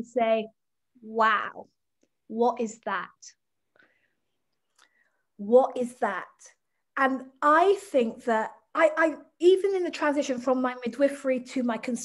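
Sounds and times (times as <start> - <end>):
woman speaking: 0.0 - 3.4, 5.4 - 12.0.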